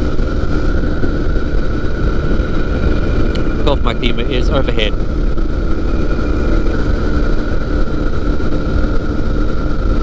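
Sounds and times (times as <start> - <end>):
aircraft engine and propeller: 0.0 - 10.0
wind rumble on microphone: 0.0 - 10.0.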